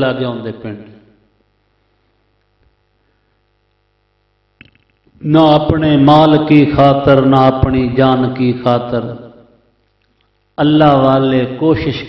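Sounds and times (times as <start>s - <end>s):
faint electrical mains hum: 0.0s - 12.0s.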